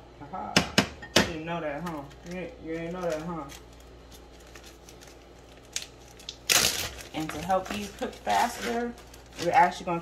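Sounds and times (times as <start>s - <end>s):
plastic bag crinkling: 1.8s - 10.0s.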